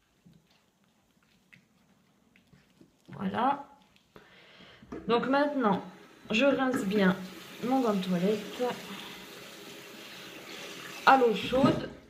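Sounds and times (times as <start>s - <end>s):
tap water running: 4.6s - 12.0s
washcloth rinsed under water: 5.0s - 12.0s.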